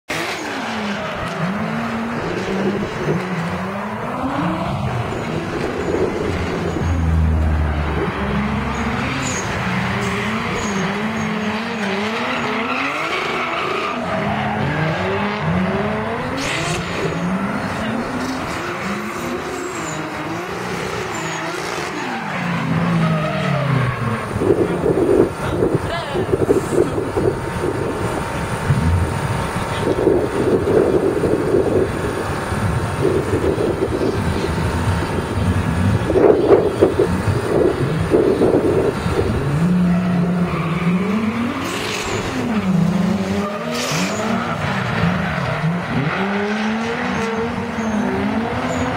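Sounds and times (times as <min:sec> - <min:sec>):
car engines revving hard: 0:00.0 - 0:48.9
tyre squeal: 0:04.4 - 0:07.3, 0:08.6 - 0:15.1, 0:16.3 - 0:24.3, 0:39.7 - 0:48.9.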